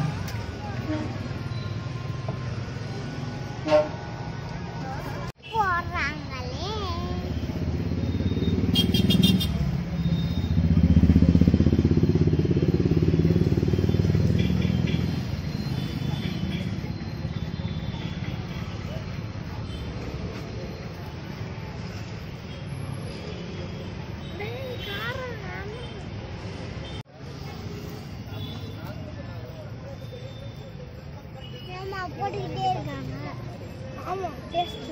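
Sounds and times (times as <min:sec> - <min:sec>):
low traffic hum: 0:00.0 - 0:34.9
vehicle engine rumble: 0:06.0 - 0:34.0.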